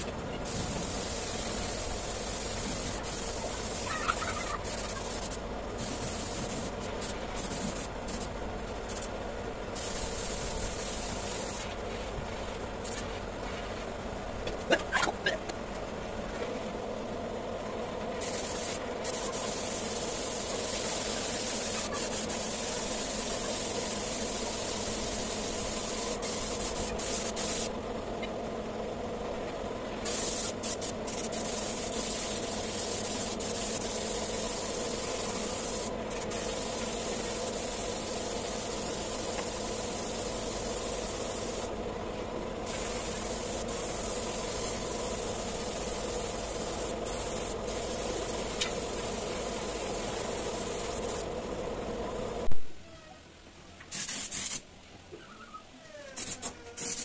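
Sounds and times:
paint spray gun hissing: 0.0 - 13.2, 18.2 - 27.7, 30.0 - 41.8, 42.6 - 51.3, 53.9 - 54.6, 56.2 - 57.0
air compressor hum: 0.0 - 52.5.

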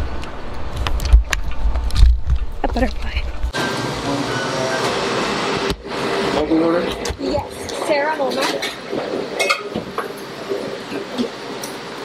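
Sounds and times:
machine-like hum and hiss: 0.0 - 12.0.

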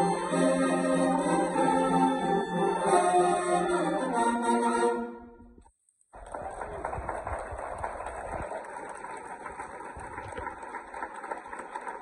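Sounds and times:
audience applauding: 6.1 - 12.0.

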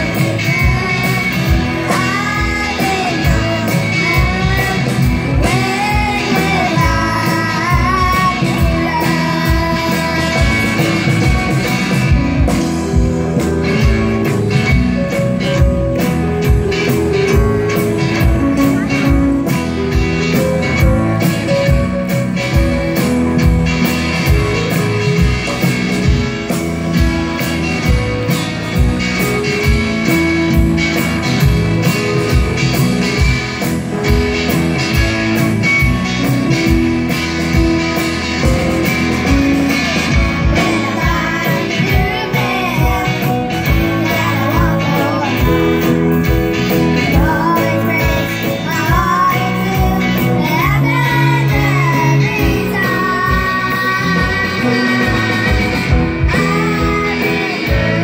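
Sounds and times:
rock band playing: 0.0 - 58.0
steady drum beat: 0.0 - 58.0
girls singing lead vocals: 47.1 - 58.0.

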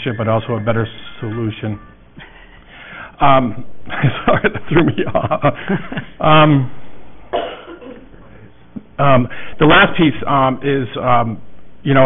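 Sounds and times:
low room noise: 0.0 - 12.0
person coughing: 7.3 - 8.2.

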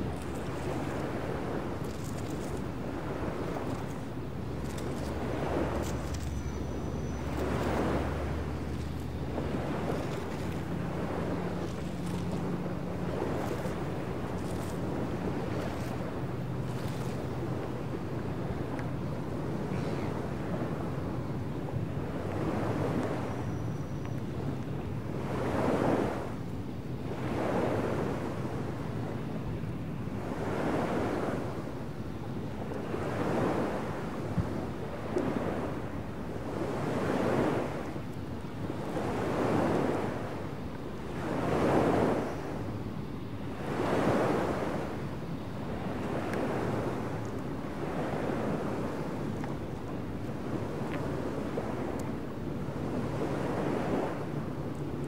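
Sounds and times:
waves washing in: 0.0 - 23.5, 24.3 - 55.0.

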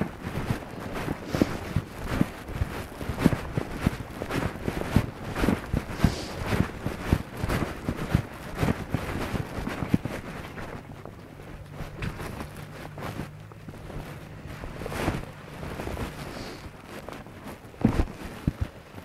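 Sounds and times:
horse hoofbeats thudding: 0.0 - 19.0
low steady hum: 0.0 - 19.0
wind buffeting microphone: 0.0 - 19.0.

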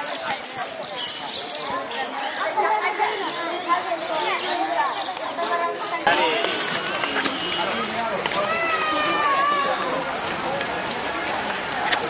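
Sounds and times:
group chatter: 0.0 - 12.0.

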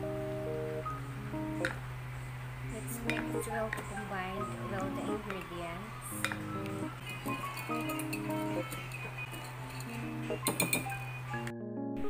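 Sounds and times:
plucked guitar music: 0.0 - 12.0.

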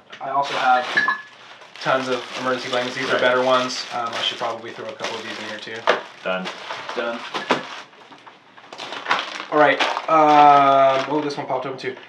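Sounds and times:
rustling of packed items: 0.4 - 12.0.

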